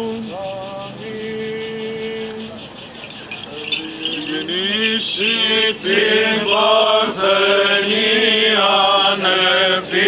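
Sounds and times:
crickets chirping: 0:00.0 - 0:10.0
man chanting: 0:03.5 - 0:08.0.

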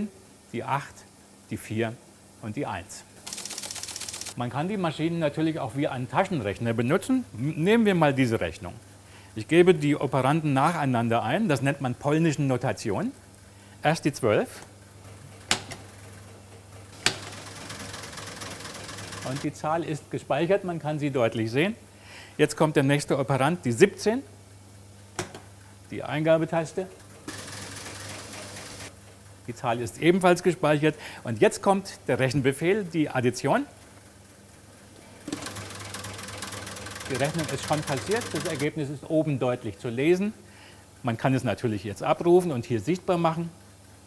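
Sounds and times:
fast relay chatter: 0:03.2 - 0:04.4, 0:16.9 - 0:19.6, 0:35.3 - 0:38.8
relays clicking: 0:35.3 - 0:38.7.

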